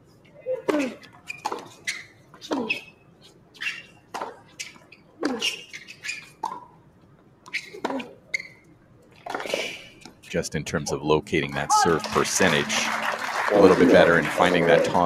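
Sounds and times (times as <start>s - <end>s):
shoes squeaking on court: 0.6s - 6.8s, 7.4s - 10.4s.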